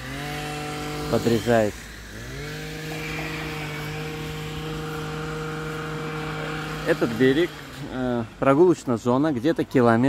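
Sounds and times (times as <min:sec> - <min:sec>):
chainsaw engine revving: 0:00.0 - 0:10.0.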